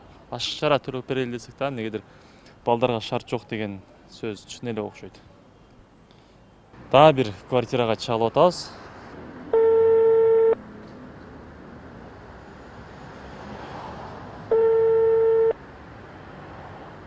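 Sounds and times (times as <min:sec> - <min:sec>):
phone ringback beeps: 0:09.6 - 0:10.6, 0:14.5 - 0:15.6.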